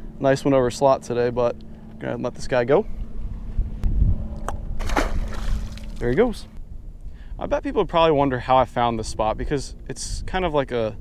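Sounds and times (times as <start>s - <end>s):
steady low rumble: 0.0s - 11.0s
fish splashing into water: 4.8s - 6.1s.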